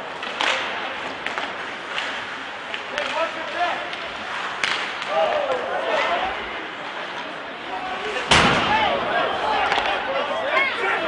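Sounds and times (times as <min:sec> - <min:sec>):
ice rink steady noise: 0:00.0 - 0:11.0
hockey sticks knocking on ice: 0:00.2 - 0:05.6
voices shouting: 0:07.6 - 0:11.0.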